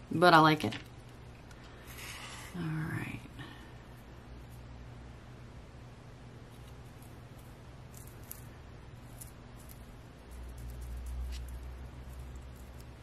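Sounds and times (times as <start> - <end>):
crackles of silica gel crystals: 6.6 - 13.0.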